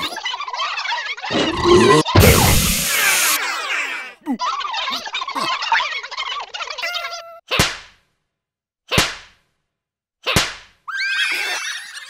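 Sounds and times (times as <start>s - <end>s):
cartoon voices chattering gibberish: 0.0s - 7.4s.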